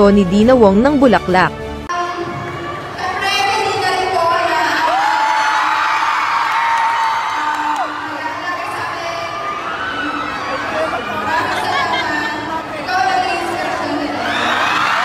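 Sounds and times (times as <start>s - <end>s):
crowd cheering and whooping: 4.7s - 15.0s.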